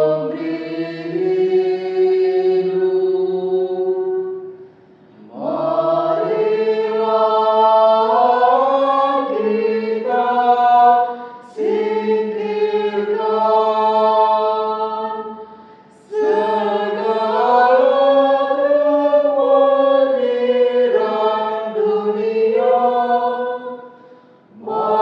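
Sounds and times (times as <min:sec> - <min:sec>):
choir chanting: 0:00.0 - 0:04.6, 0:05.2 - 0:25.0.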